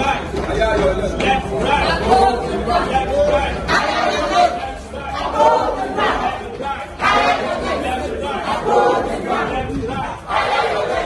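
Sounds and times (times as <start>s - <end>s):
crowd of students chattering: 0.0s - 11.0s.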